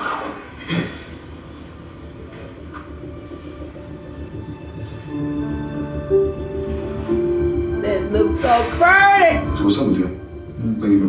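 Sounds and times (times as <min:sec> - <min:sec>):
television soundtrack rumble: 0:00.0 - 0:11.0.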